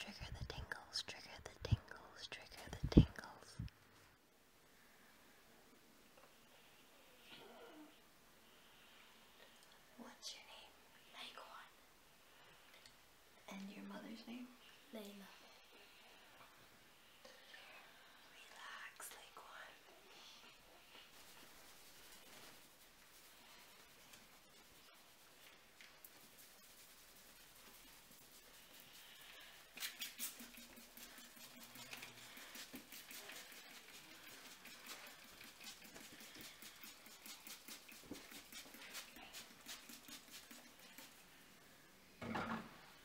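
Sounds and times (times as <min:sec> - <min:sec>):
person whispering: 0:00.0 - 0:03.7, 0:10.0 - 0:11.8, 0:13.4 - 0:15.4, 0:18.3 - 0:20.6
fingertips rubbing scalp: 0:21.0 - 0:41.2.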